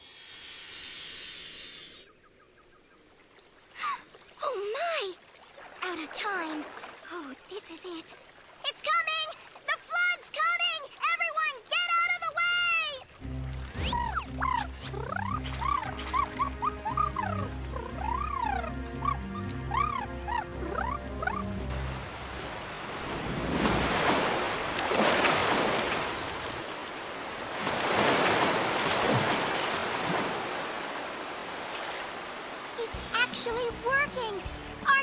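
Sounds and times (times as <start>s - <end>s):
flood water rushing: 3.7s - 35.0s
cartoon music with swooping glides: 13.2s - 22.3s.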